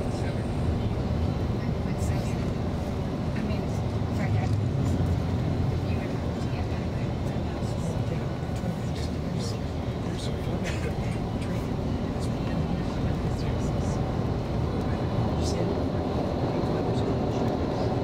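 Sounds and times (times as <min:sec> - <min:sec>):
bus engine and tyre rumble: 0:00.0 - 0:18.0.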